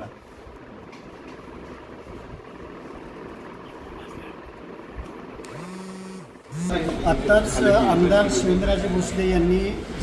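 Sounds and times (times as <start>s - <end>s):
murmuring voices: 6.5s - 10.0s.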